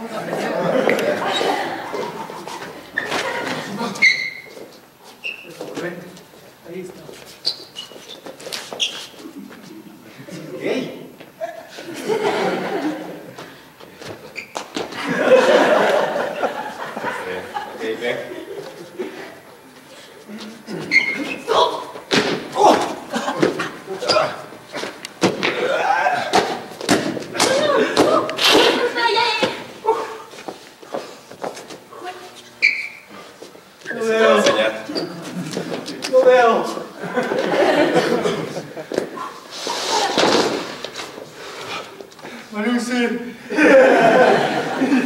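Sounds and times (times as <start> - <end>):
scuffling: 0.2 - 9.8.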